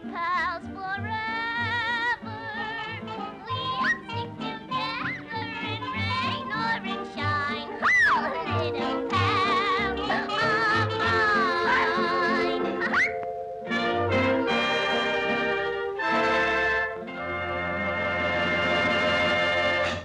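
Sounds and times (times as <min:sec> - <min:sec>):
orchestral cartoon music with brass: 0:02.8 - 0:20.0.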